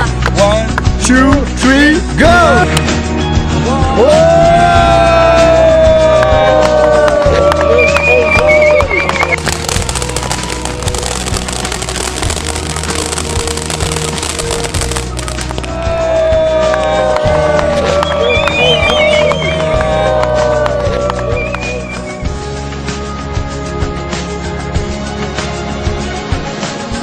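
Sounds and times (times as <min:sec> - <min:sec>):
music: 0:00.0 - 0:27.0
fireworks crackling: 0:07.6 - 0:15.9, 0:17.6 - 0:22.2.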